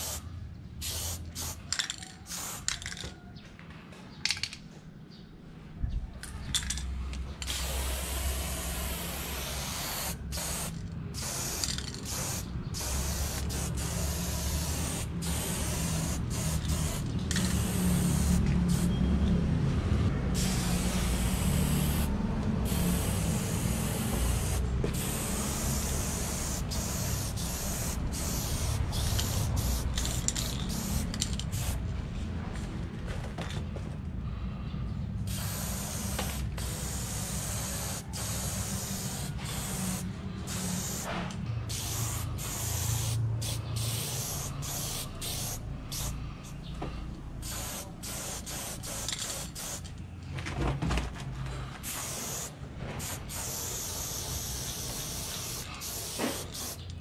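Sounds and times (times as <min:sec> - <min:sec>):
aerosol spray can hissing: 0:00.0 - 0:00.2, 0:00.8 - 0:01.6, 0:07.4 - 0:18.9, 0:20.4 - 0:31.8, 0:35.3 - 0:41.1, 0:41.7 - 0:46.2, 0:47.4 - 0:49.8, 0:51.8 - 0:56.9.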